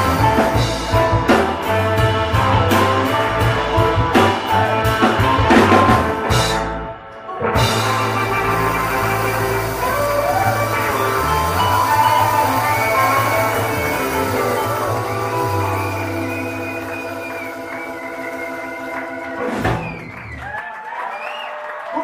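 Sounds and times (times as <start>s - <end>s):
live blues band playing: 0.0s - 20.3s
crowd cheering: 7.1s - 22.0s.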